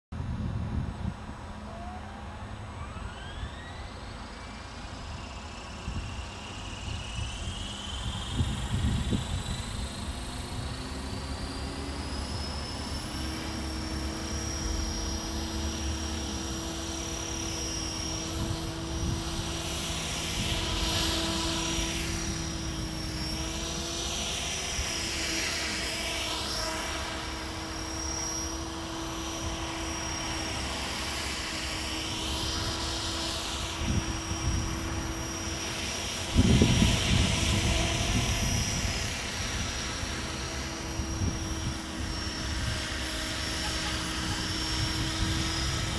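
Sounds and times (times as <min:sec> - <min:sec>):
helicopter motor and rotor whine: 0:00.2 - 0:45.9.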